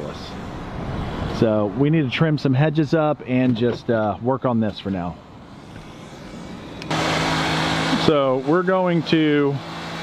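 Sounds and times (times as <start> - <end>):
truck engine and fan idling: 0.0 - 10.0.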